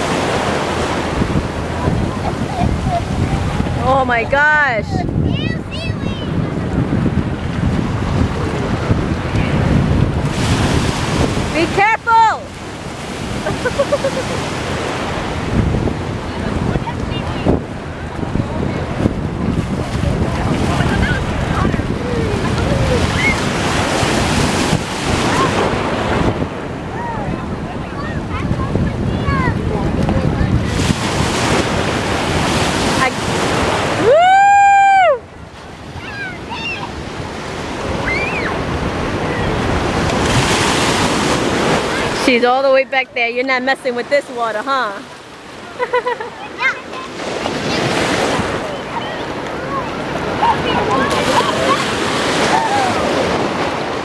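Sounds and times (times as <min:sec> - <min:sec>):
wind on microphone: 0:00.0 - 0:45.6, 0:47.0 - 0:54.0
surf splashing in shallow water: 0:00.0 - 0:54.0.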